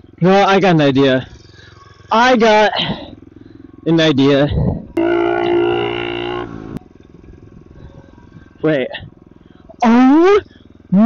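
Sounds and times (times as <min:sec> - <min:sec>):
motorbike engine running: 0:00.0 - 0:11.0.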